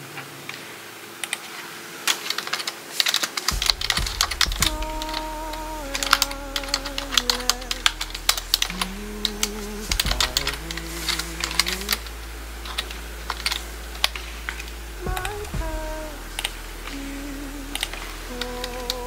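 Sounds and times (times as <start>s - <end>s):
rapid irregular clicking: 1.2s - 19.0s
wavering tune of held notes: 3.6s - 19.0s.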